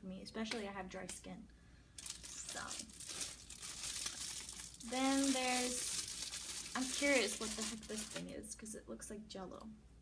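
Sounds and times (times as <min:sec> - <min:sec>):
packaging crinkling and rustling: 0:02.0 - 0:08.4.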